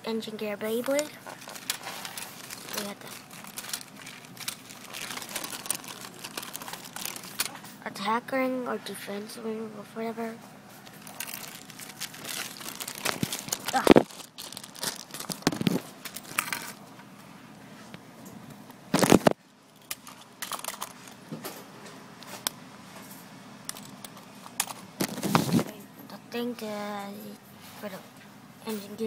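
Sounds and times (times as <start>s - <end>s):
plastic packaging crinkling: 0.8s - 7.6s, 10.8s - 16.8s, 19.0s - 21.2s, 24.6s - 25.6s.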